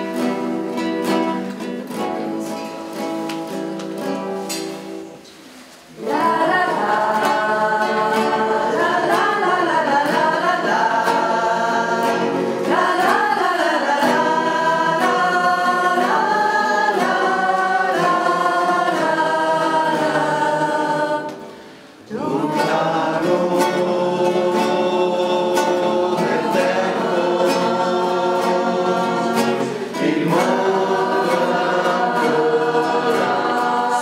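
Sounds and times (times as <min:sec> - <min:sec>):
group singing a carol: 0:00.0 - 0:34.0
strummed acoustic guitars: 0:00.0 - 0:34.0.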